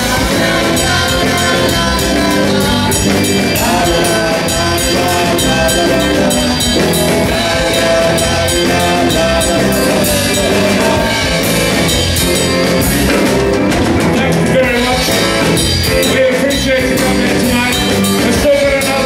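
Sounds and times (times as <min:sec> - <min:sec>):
person singing: 0:00.0 - 0:12.6, 0:14.1 - 0:19.0
bass guitar: 0:00.0 - 0:19.0
drum kit: 0:00.0 - 0:19.0
electric guitar: 0:00.0 - 0:19.0.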